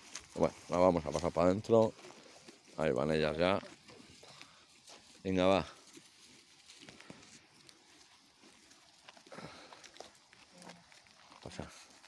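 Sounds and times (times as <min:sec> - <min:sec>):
sheep cropping grass: 0:00.0 - 0:12.0.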